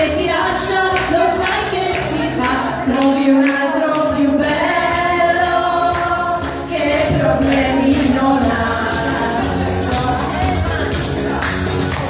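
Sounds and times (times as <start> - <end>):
women singing together: 0.0 - 12.0.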